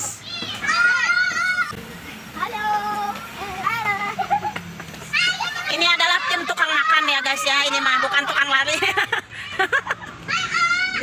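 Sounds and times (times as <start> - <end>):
children shouting: 0.0 - 11.0.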